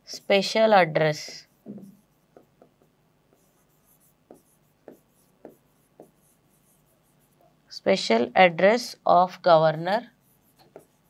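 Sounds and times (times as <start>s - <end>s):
pen strokes on whiteboard: 0.0s - 7.7s, 10.1s - 11.0s.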